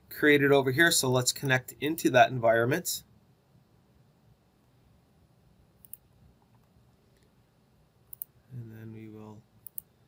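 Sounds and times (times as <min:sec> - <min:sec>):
computer mouse clicks: 0:05.8 - 0:07.3, 0:08.1 - 0:08.3, 0:09.6 - 0:09.9.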